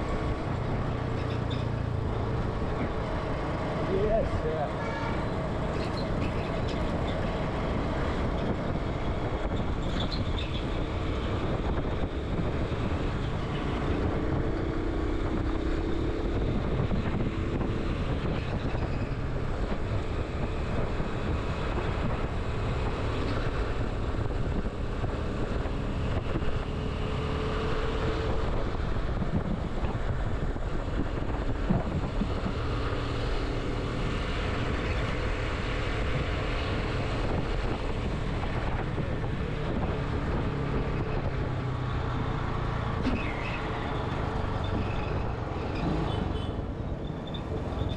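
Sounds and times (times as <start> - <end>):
wind rushing over microphone: 0.0 - 47.9.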